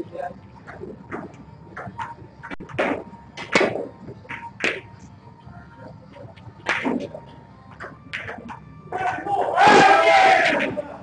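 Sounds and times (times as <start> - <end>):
snooker balls clicking: 0.6 - 4.9, 6.6 - 9.2.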